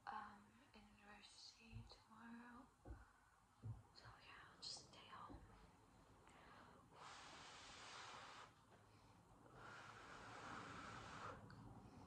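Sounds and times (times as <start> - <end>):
soft low thump: 2.8 - 3.9
person whispering: 4.0 - 5.4.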